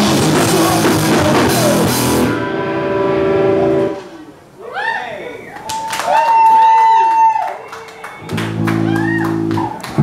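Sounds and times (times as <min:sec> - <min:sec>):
distorted electric guitars ringing: 0:00.0 - 0:04.6
drums: 0:00.0 - 0:04.6.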